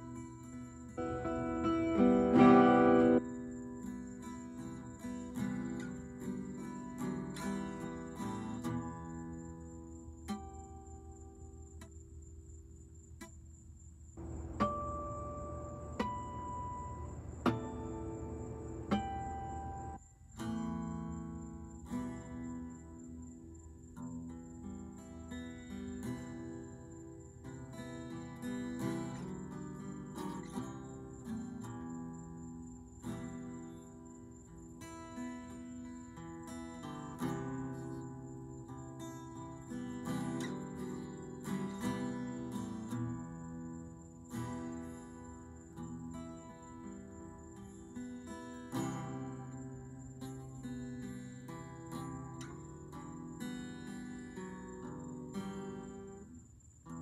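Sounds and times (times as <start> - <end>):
acoustic guitar strumming: 0.0 - 11.6, 14.2 - 23.2, 24.0 - 57.0.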